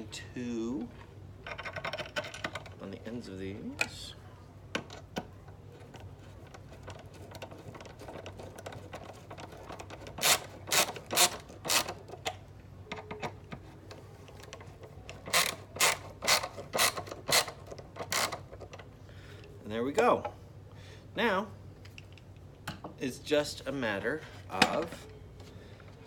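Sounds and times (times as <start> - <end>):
ratcheting screwdriver clicking: 9.8 - 12.0.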